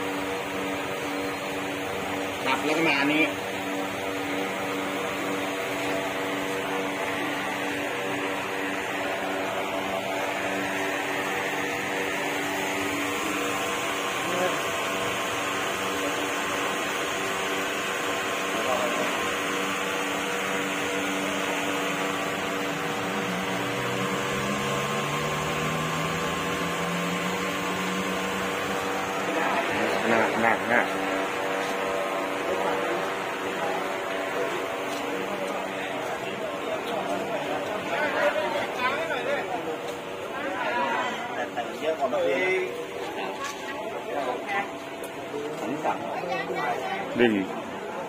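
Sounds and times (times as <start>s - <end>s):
constant hum: 0.0s - 48.0s
steady tones: 0.1s - 47.8s.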